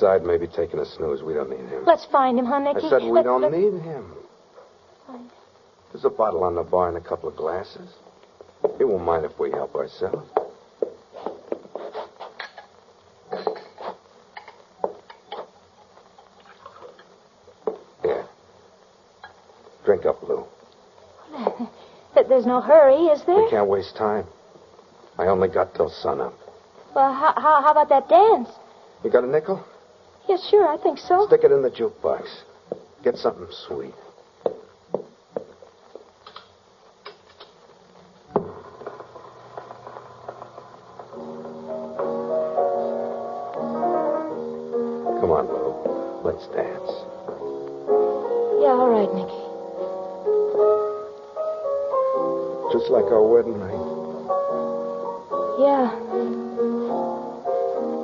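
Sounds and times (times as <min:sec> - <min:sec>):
footsteps: 0:08.2 - 0:12.7, 0:14.8 - 0:17.9, 0:32.7 - 0:33.4, 0:34.4 - 0:36.2, 0:37.1 - 0:44.4, 0:45.5 - 0:46.2, 0:47.0 - 0:48.2
piano music: 0:38.4 - 0:58.0.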